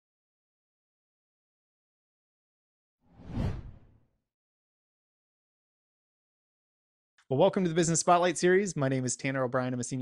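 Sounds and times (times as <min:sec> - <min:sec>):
whoosh sound effect: 0:03.2 - 0:03.9.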